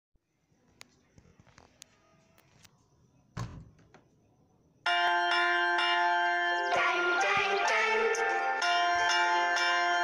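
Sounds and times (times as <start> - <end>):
bright bell-like chimes: 4.9 - 10.0.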